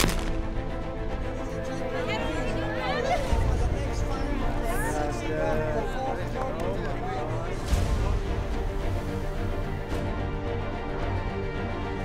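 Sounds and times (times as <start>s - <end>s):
shotgun shot: 0.0s - 0.6s
background music: 0.0s - 12.0s.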